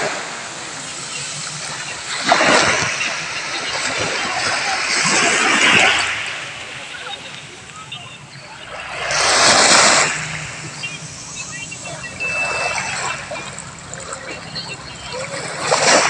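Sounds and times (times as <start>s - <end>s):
small waves washing on sand: 0.0s - 16.0s
surges of rushing water: 0.0s - 16.0s.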